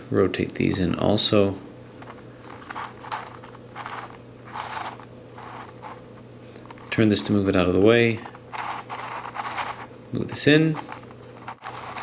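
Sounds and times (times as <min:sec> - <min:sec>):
plastic puzzle scrapes and clicks: 0:02.0 - 0:06.0, 0:08.5 - 0:09.9, 0:10.7 - 0:12.0.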